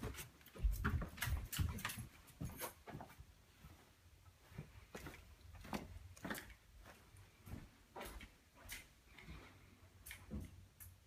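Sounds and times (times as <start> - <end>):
handheld camera thumps and rustles: 0.0 - 3.2.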